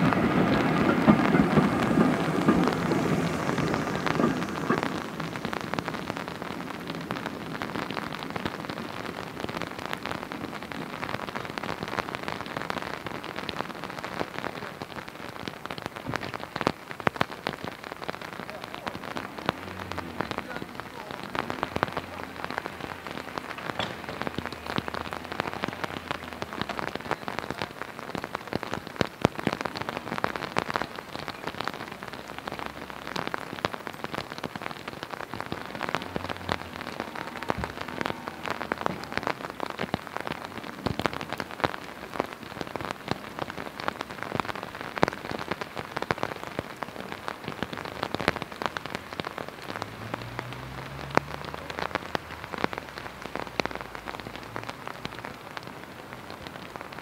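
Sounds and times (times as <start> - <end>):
steady rain falling: 0.0 - 57.0.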